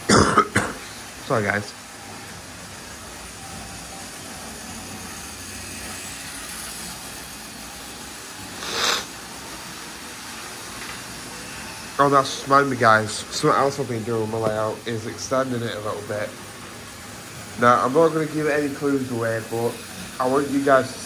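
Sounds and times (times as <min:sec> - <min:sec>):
model train motors humming: 0:00.0 - 0:21.0
wheels on track: 0:00.8 - 0:21.0
short hissing burst: 0:05.0 - 0:13.2.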